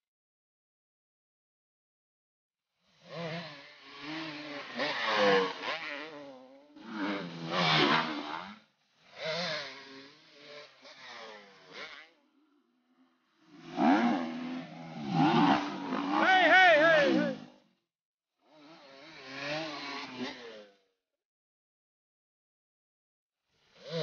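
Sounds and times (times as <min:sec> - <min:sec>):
dirt bike engines revving: 0:03.1 - 0:12.4, 0:13.1 - 0:17.6, 0:18.6 - 0:20.7.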